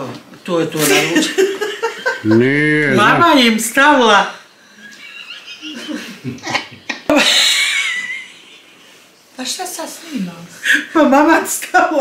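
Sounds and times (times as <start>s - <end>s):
women laughing: 1.1s - 3.2s, 4.8s - 9.0s.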